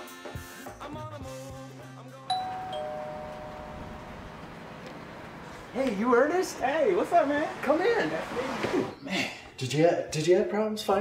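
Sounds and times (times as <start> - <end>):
two-note doorbell chime: 2.3 - 4.4.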